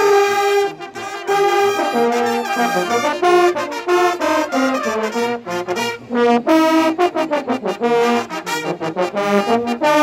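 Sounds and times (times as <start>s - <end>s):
military brass band playing march: 0.0s - 10.0s.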